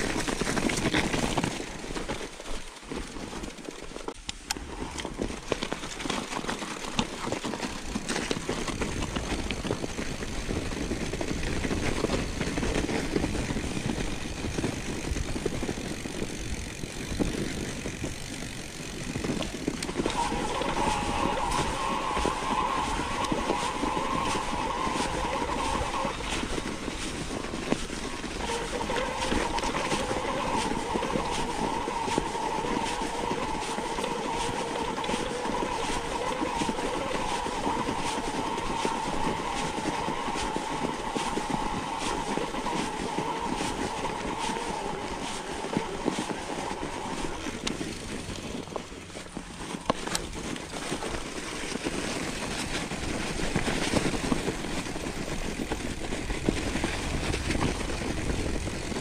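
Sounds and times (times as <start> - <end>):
bike tyre rumble on snow: 0.0 - 59.0.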